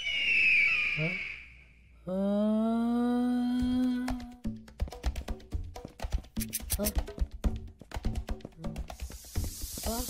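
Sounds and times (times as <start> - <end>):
high hiss: 8.9 - 10.0.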